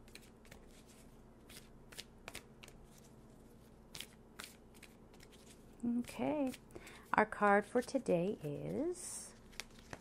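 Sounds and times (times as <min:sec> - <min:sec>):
cards being shuffled: 0:00.0 - 0:03.1, 0:07.8 - 0:10.0.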